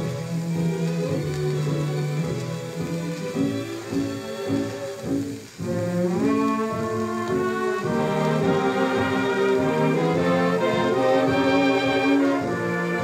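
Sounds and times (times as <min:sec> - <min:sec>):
brass-led dance orchestra on record: 0:00.0 - 0:13.0.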